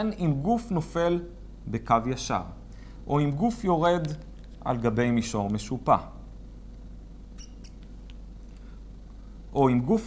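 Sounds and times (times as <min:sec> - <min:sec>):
low steady hum: 0:00.0 - 0:10.0
marker pen squeaking on glass: 0:07.3 - 0:08.0.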